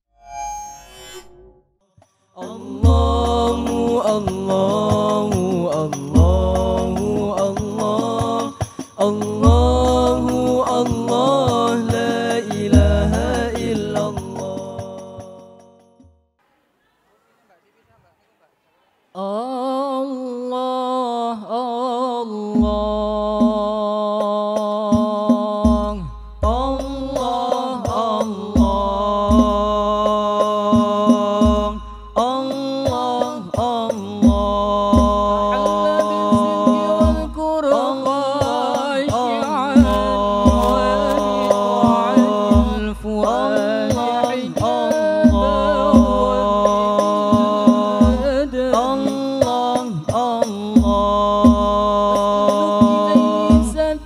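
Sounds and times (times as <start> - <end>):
man singing devotional phrase: 2.4 - 15.6, 19.2 - 54.0
men chanting in unison: 2.4 - 15.6, 22.6 - 54.0
frame drums struck: 38.4 - 54.0.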